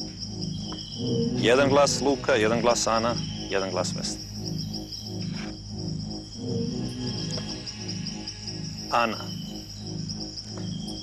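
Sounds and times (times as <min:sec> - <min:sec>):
crickets chirping: 0:00.0 - 0:11.0
low pulsing background music: 0:00.0 - 0:11.0.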